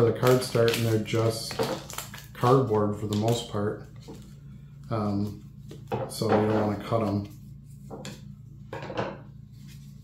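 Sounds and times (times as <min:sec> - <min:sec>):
card pack wrapper being cut: 0:00.0 - 0:03.6
low steady hum: 0:00.0 - 0:10.0.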